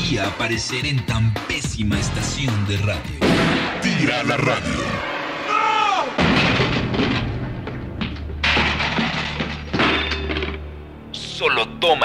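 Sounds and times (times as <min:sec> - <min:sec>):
loud crash: 0:03.2 - 0:04.1, 0:04.8 - 0:10.6.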